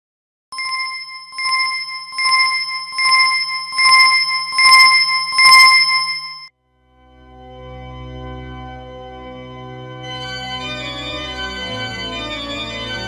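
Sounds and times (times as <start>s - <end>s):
bicycle bell ringing: 0.6s - 6.5s.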